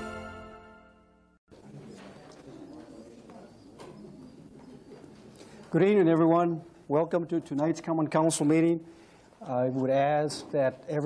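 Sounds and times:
low murmuring voices: 1.5 - 6.2.

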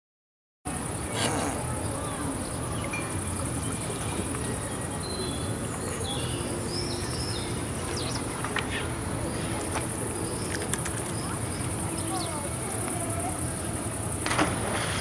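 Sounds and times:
faint voices: 0.7 - 15.0.

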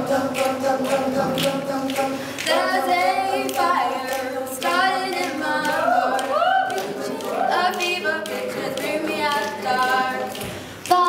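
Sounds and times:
group singing a cappella: 0.0 - 11.0.

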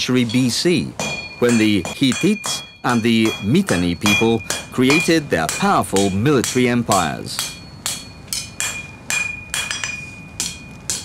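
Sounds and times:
hammer striking metal: 0.0 - 11.0.

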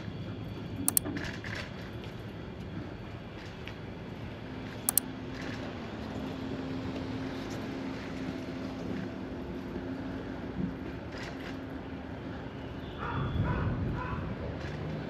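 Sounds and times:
bicycle tyre and wind noise: 13.0 - 15.0.

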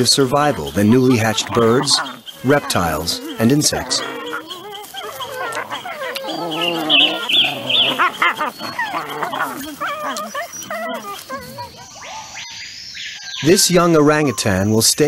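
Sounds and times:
wolf pups whining and squealing: 0.0 - 14.7.

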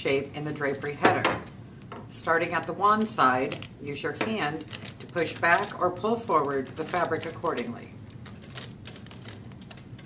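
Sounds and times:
fabric rustling: 4.6 - 9.8.

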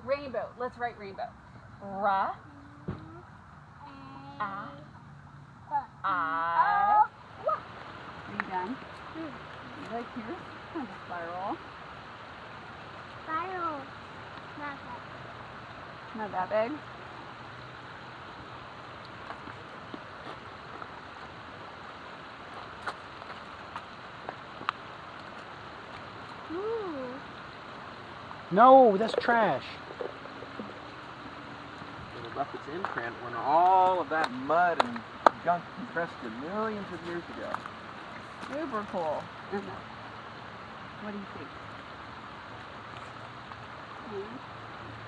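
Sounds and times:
creek running over rocks: 0.0 - 45.0.

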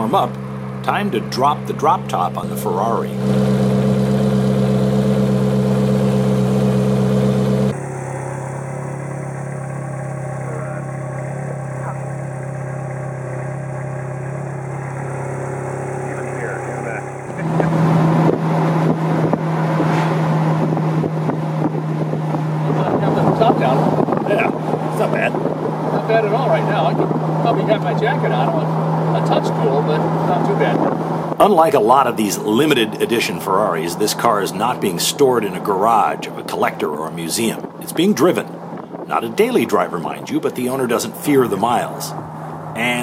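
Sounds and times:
car engine idling: 0.0 - 43.0
road noise: 0.0 - 43.0
rushing wind: 3.2 - 43.0.

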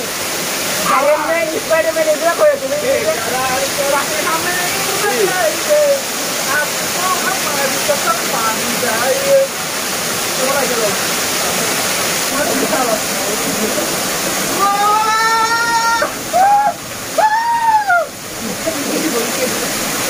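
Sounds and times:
waterfall pouring onto rocks: 0.0 - 20.0
men talking: 1.0 - 16.8.

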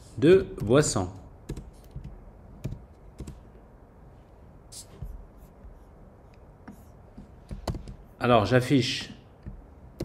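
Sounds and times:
keyboard keystrokes: 7.4 - 8.0.

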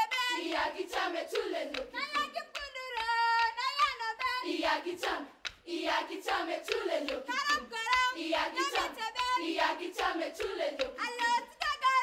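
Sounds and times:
girls' choir singing: 0.0 - 11.8
hand claps: 0.0 - 12.0.

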